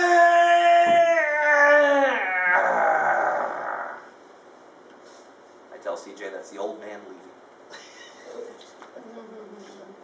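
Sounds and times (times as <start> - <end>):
man whining and groaning: 0.0 - 4.1.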